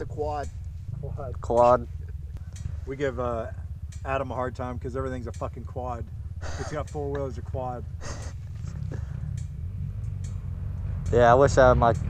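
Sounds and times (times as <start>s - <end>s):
quad engines idling: 0.0s - 12.0s
faint clicks: 8.4s - 11.2s.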